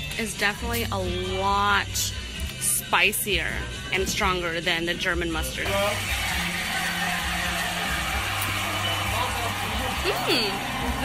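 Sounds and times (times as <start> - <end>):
background music with low bass: 0.0 - 11.0.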